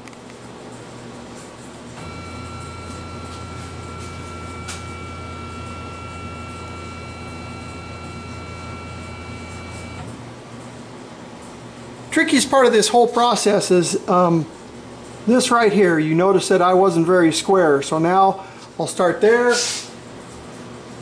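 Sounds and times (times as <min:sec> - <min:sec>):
motors whining: 0:02.0 - 0:10.2.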